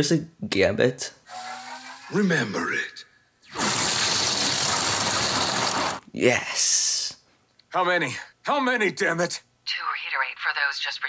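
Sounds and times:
energy blast explosion effect: 0:03.5 - 0:06.0.

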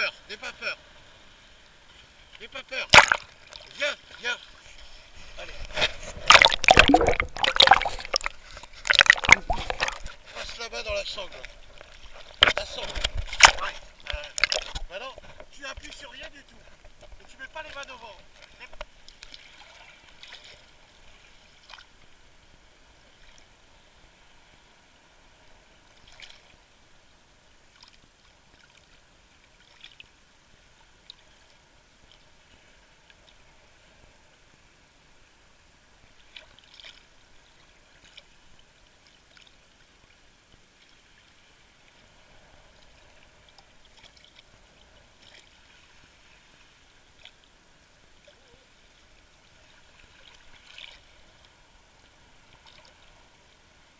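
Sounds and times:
water lapping against camera housing: 0:02.5 - 0:19.4
brief splashes and crackles: 0:02.9 - 0:03.8, 0:05.2 - 0:10.6, 0:11.3 - 0:14.9.

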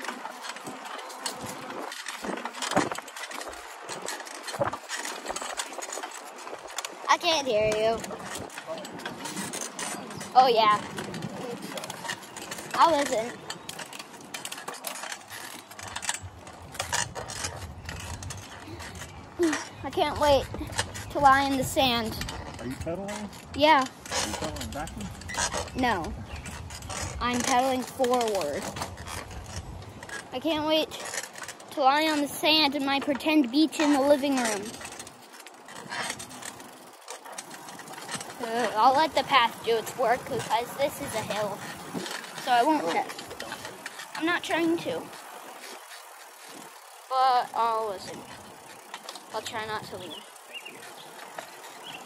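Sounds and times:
bicycle clicks and rattles: 0:00.0 - 0:52.0
tyres rumbling on trail: 0:00.0 - 0:52.0.

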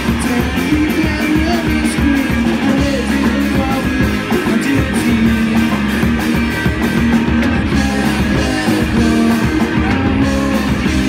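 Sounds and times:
drum kit beat: 0:00.0 - 0:11.0
electric bass: 0:00.0 - 0:11.0
electric guitars: 0:00.0 - 0:11.0.

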